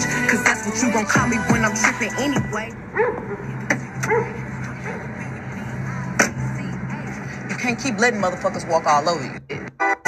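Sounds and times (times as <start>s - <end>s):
woman rapping over bass line: 0.0s - 7.7s.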